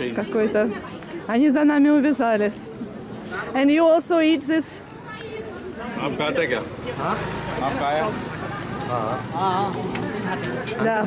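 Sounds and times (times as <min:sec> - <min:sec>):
vehicle engine running: 0:06.6 - 0:10.6.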